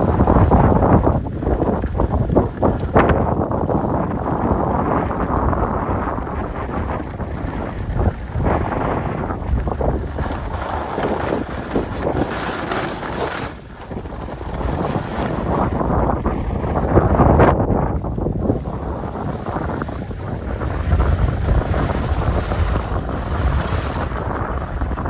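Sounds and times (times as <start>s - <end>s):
skis scraping on snow: 0.0s - 25.0s
wind buffeting microphone: 0.0s - 25.0s.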